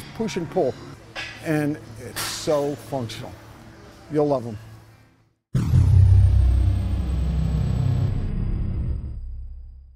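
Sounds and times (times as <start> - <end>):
long rumbling tail: 5.6 - 9.8
deep boom: 5.6 - 9.9.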